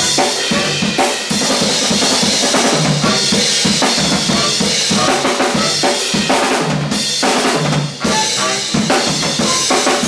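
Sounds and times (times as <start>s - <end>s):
live funk band jamming: 0.0s - 10.0s.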